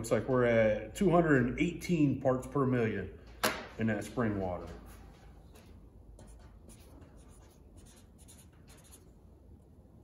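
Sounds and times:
pen scratching on paper: 0:06.2 - 0:09.1.

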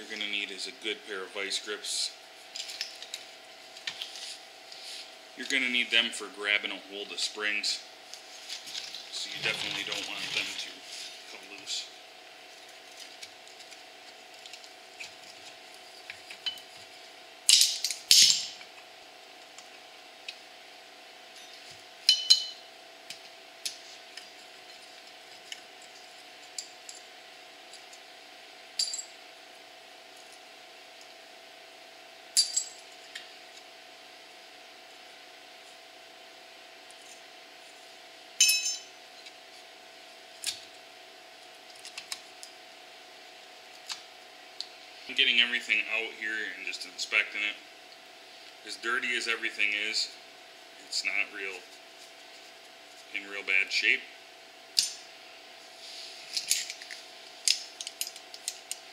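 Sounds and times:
faint steady hum: 0:00.0 - 0:58.9.

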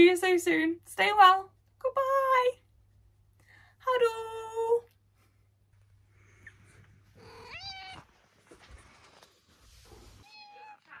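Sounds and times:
cat meowing: 0:07.2 - 0:08.1, 0:10.2 - 0:11.0
shuffling noise: 0:07.9 - 0:11.0.

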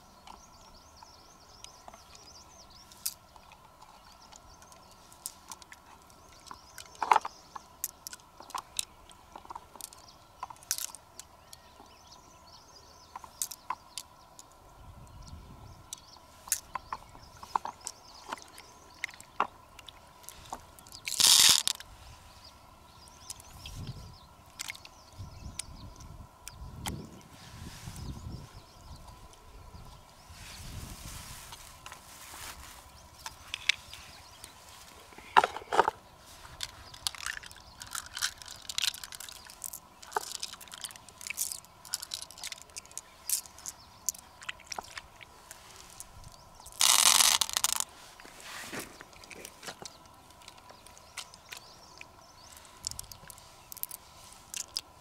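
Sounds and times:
beads clattering: 0:20.9 - 0:21.8, 0:36.6 - 0:44.2, 0:46.7 - 0:47.9.

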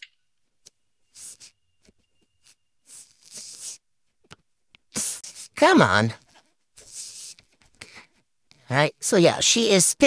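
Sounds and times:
snake hissing: 0:01.1 - 0:01.6, 0:02.4 - 0:03.8, 0:05.0 - 0:05.6, 0:06.8 - 0:07.4.

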